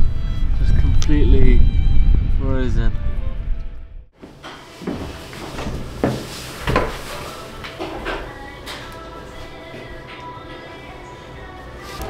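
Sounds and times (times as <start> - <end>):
wind buffeting microphone: 0.0 - 4.0
knocks and clunks: 4.2 - 7.1
soft background music: 4.2 - 12.0.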